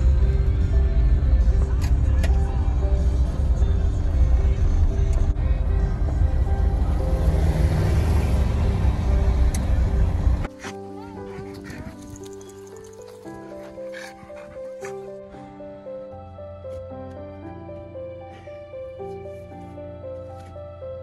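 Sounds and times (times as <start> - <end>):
road and wind rumble in cab: 0.0 - 10.6
music with held notes: 0.0 - 21.0.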